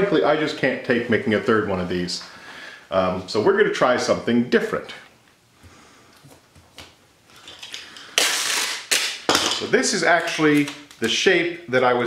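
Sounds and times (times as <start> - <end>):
packing tape ripping off roll: 6.8 - 11.1.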